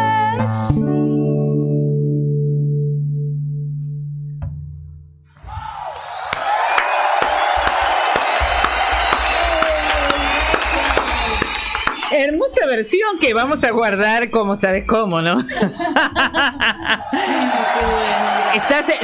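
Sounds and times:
applause and cheering: 5.5 - 12.2, 16.9 - 19.0.

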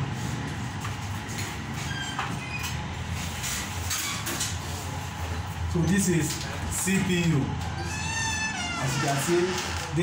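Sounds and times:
low mechanical hum of machinery: 0.0 - 10.0.

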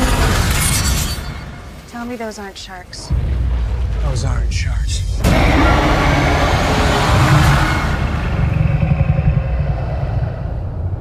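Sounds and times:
deep rumble: 3.0 - 11.0.

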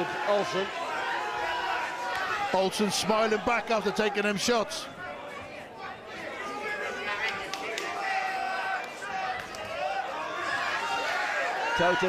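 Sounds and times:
crowd murmur and calling out: 0.0 - 12.0.

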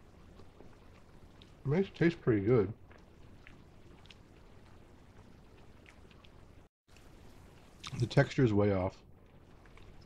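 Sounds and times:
faint mouth clicks chewing: 0.4 - 1.6, 2.9 - 6.4, 7.8 - 8.0.

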